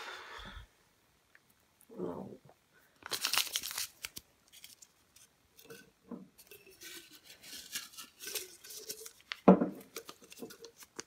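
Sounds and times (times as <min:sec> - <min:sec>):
paper slips rustling in a jar: 0:03.0 - 0:05.8, 0:06.4 - 0:11.0.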